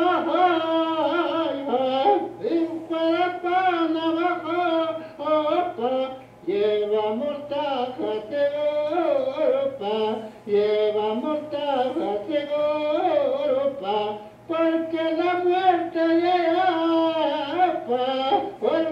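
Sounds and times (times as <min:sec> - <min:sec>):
faint steady hum: 0:00.0 - 0:18.9
man singing over loudspeakers: 0:00.0 - 0:18.9.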